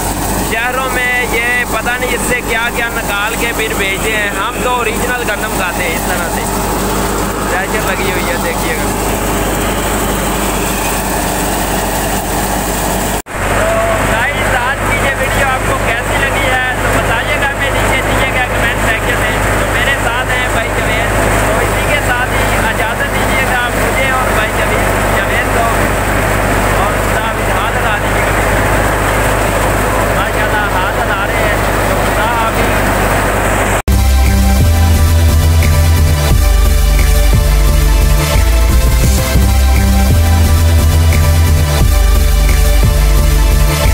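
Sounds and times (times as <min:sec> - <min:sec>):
thresher mechanical drone: 0:00.0 - 0:43.9.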